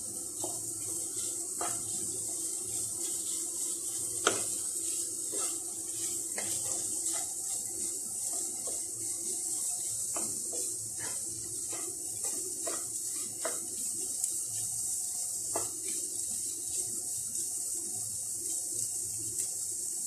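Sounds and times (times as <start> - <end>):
wooden spatula scraping a pan: 0.0 - 19.5
food sizzling in a pan: 0.0 - 20.0.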